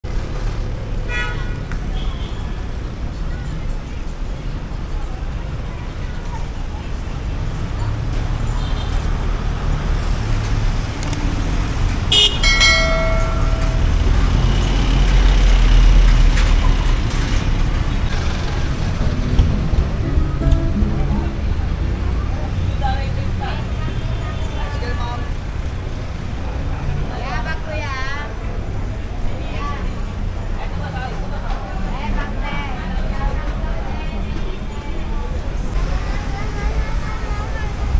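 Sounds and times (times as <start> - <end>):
vehicle engines rumbling: 0.0 - 37.9
voices of passers-by: 0.1 - 37.9.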